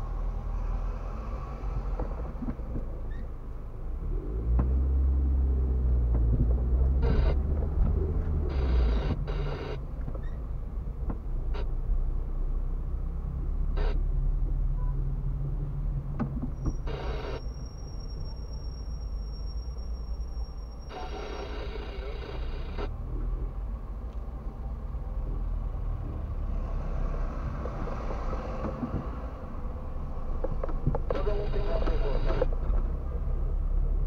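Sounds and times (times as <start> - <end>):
car engine and tyre rumble: 0.0 - 34.0.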